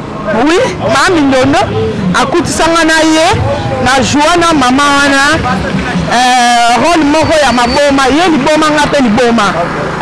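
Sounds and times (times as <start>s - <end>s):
woman talking loudly: 0.3s - 5.4s, 6.1s - 9.6s.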